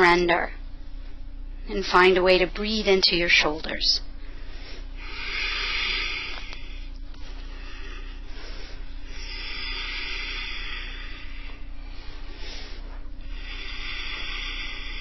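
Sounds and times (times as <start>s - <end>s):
low hum: 0.0s - 15.0s
slow breathing: 4.1s - 15.0s.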